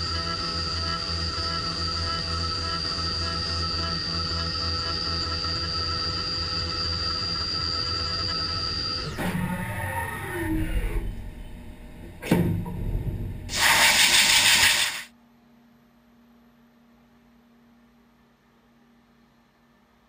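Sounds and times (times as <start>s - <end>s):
low hum: 0.0s - 15.1s
mill cutting metal whine: 0.0s - 15.1s
spindle winding down: 9.0s - 12.2s
sharp clunk: 12.2s - 13.1s
loud hissing rush: 13.5s - 15.1s.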